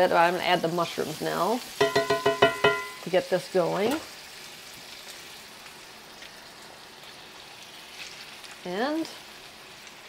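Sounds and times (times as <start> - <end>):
bacon and onions sizzling: 0.0 - 10.0.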